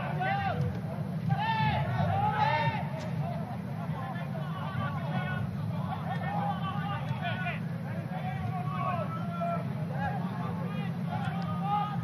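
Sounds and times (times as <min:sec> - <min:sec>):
players and crowd calling: 0:00.0 - 0:12.0.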